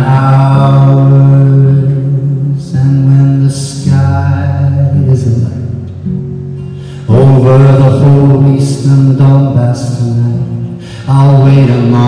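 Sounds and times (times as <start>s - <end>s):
acoustic guitar: 0.0s - 12.0s
man singing in reverberant church: 0.0s - 12.0s.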